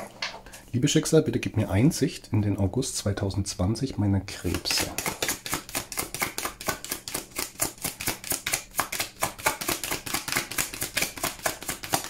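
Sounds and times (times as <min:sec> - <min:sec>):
cards being shuffled: 0:04.4 - 0:12.0.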